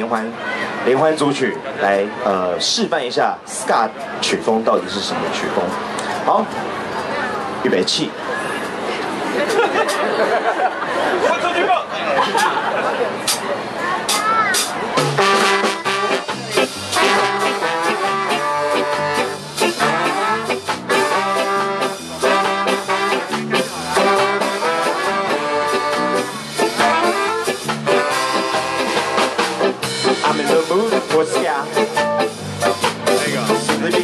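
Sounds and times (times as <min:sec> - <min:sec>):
drums: 0:03.4 - 0:10.8, 0:12.3 - 0:34.0
keyboard: 0:09.2 - 0:34.0
horn section playing tune: 0:15.0 - 0:34.0
electric guitar: 0:15.8 - 0:34.0.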